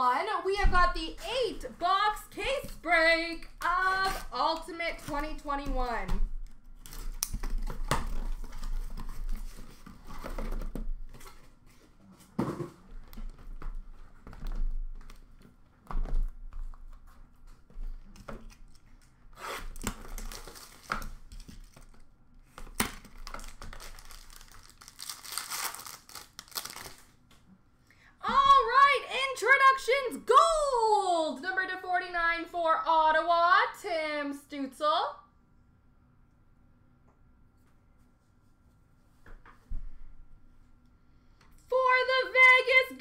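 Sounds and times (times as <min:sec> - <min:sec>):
packaging crinkling and tearing: 0:17.5 - 0:27.2.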